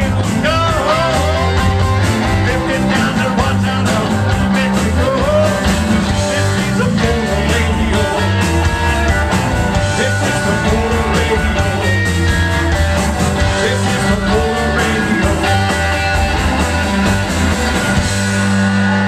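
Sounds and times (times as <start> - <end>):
live rock band playing: 0.0 - 19.0.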